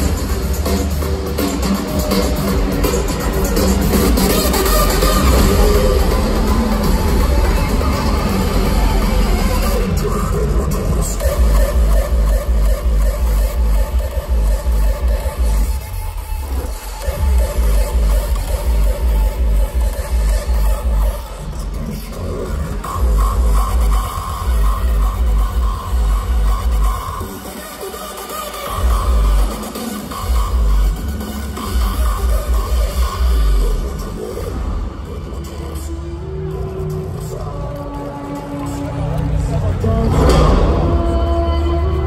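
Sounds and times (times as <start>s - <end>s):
electronic dance music: 0.0s - 42.0s.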